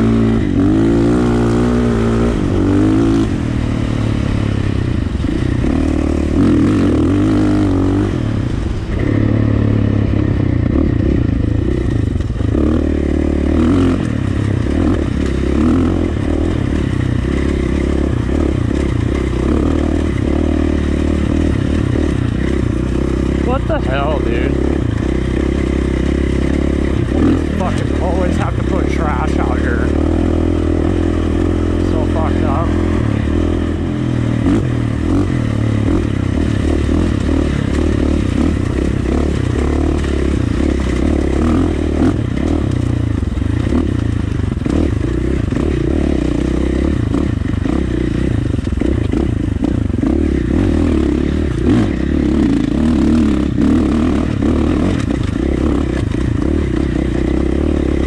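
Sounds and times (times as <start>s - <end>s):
dirt bike engine running: 0.0s - 58.0s.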